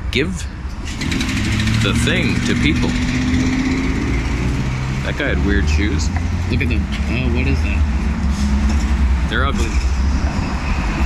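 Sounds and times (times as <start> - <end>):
road noise: 0.0 - 11.0
vehicle engine running: 0.9 - 10.4.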